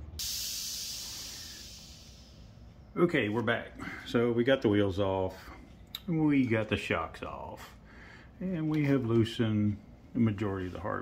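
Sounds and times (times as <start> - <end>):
hiss: 0.0 - 2.6.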